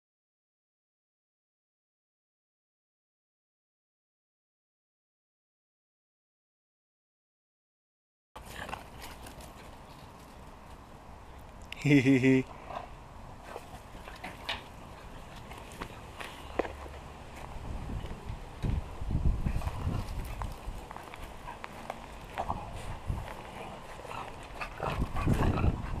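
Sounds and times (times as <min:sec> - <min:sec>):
low thuds and crunches: 0:17.4 - 0:21.5.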